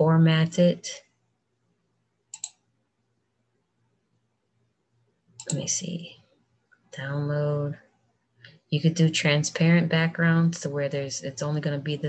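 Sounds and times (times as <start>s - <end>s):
faint low hum: 0.0s - 12.0s
computer mouse clicks: 2.3s - 2.6s, 5.4s - 5.7s.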